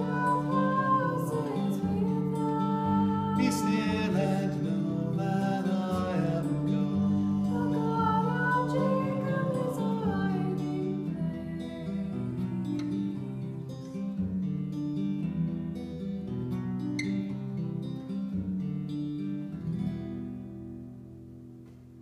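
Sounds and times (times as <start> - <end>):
steel-string acoustic guitar: 0.0 - 22.0.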